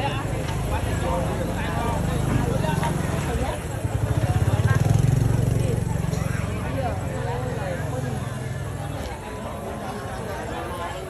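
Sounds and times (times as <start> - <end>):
vehicle engine running: 0.0 - 8.9
people's voices: 0.0 - 11.0.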